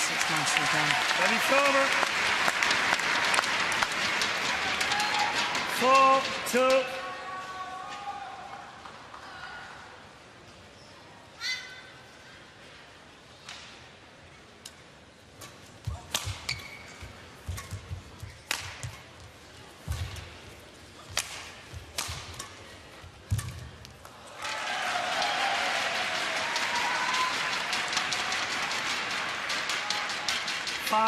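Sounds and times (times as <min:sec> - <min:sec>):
crowd applause and cheering: 0:00.0 - 0:06.4, 0:24.1 - 0:31.0
racket striking shuttlecock: 0:15.8 - 0:19.1, 0:21.0 - 0:24.0.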